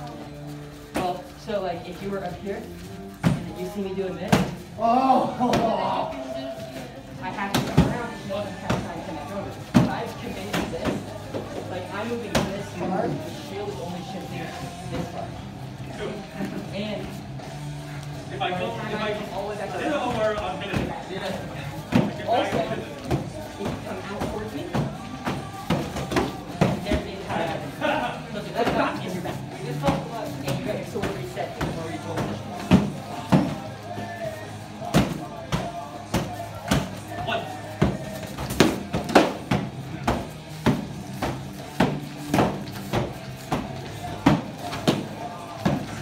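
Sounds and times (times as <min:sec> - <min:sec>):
background music: 0:00.0 - 0:46.0
voices: 0:00.0 - 0:46.0.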